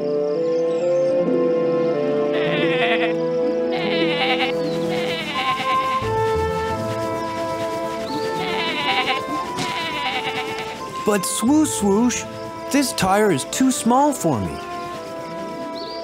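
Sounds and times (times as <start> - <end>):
background music: 0.0 - 16.0
cartoon sheep bleating: 2.3 - 6.0, 8.4 - 10.8.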